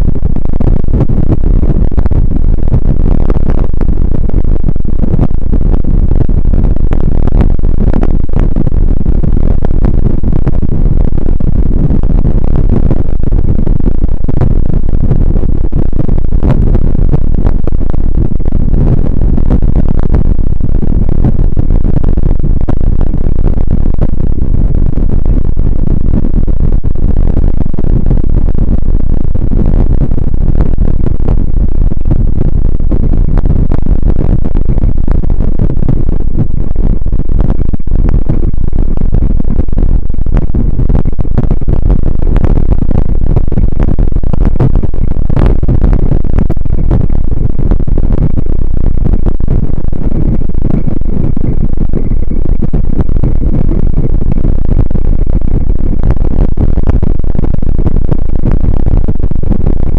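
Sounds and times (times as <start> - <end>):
bicycle ride rumble: 0.0 - 0.3.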